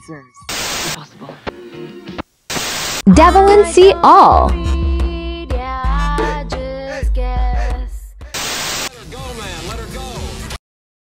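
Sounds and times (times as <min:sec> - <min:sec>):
loud static hiss: 0:00.5 - 0:01.0, 0:02.2 - 0:03.1, 0:08.4 - 0:09.0
wavering voice: 0:03.1 - 0:04.8.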